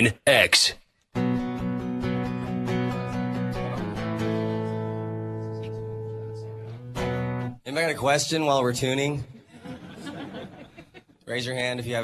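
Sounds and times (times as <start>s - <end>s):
guitar chords strummed: 1.2s - 7.6s.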